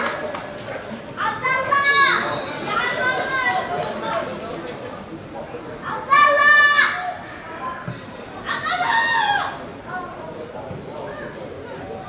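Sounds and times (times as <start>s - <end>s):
young voices shouting: 8.4s - 9.7s.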